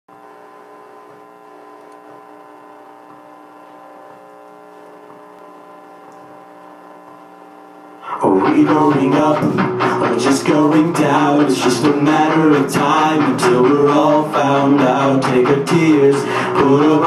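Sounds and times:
electrical hum: 0:00.1 - 0:17.0.

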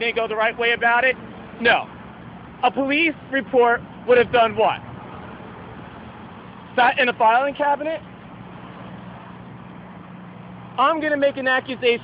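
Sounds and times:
street traffic: 0:00.0 - 0:12.0.

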